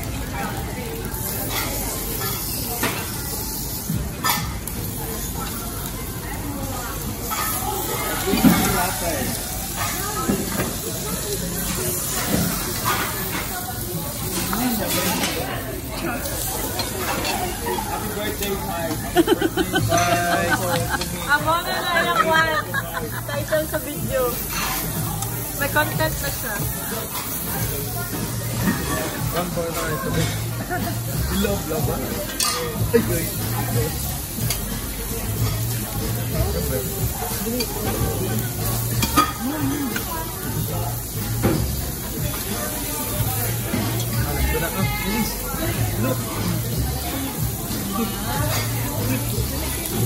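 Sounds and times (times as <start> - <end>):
food sizzling on a grill: 0.0 - 50.0
quiet chatter: 0.0 - 50.0.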